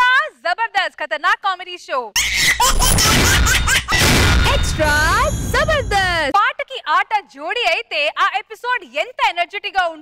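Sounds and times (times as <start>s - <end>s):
crowd laughing loudly: 2.3s - 4.6s.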